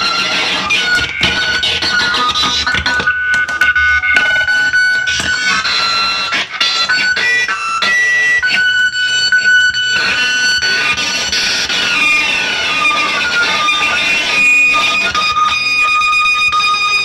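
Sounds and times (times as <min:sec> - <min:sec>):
shrill high tones: 0:00.0 - 0:17.0.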